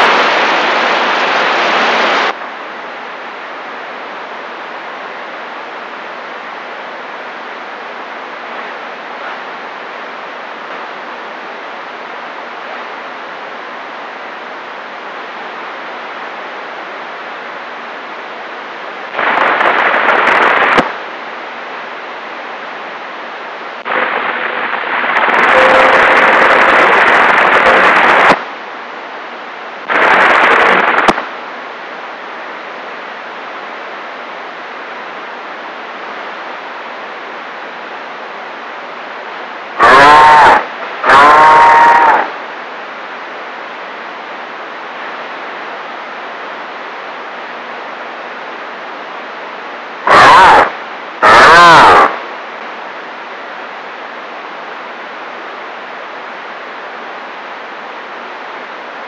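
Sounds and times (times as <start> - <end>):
radio static bursts: 0.0 - 2.4, 19.0 - 21.0, 23.8 - 28.4, 29.8 - 31.4, 39.6 - 42.4, 50.0 - 52.3
radio receiver hiss: 0.0 - 3.6, 6.1 - 34.0, 34.6 - 46.9, 49.9 - 52.8.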